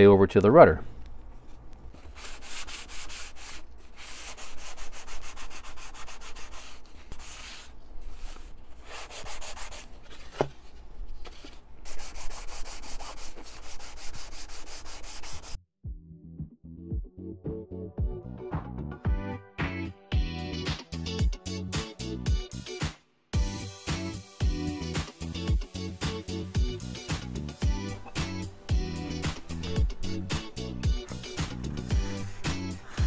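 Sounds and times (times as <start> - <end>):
sandpaper rubbing on wood: 2.0 - 10.5, 11.4 - 15.6, 28.0 - 33.0
music: 15.8 - 33.0.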